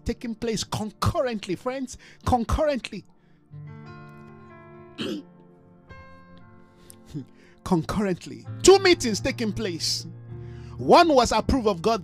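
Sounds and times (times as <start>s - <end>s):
soft sustained chord music: 0.0s - 12.0s
man clearing throat: 5.0s - 5.3s.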